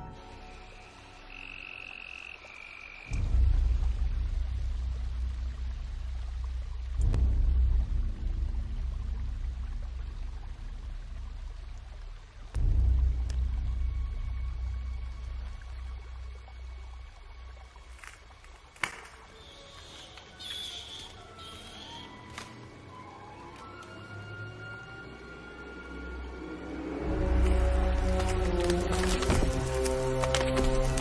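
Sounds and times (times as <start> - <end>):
deep low rumble: 3.1 - 17.8.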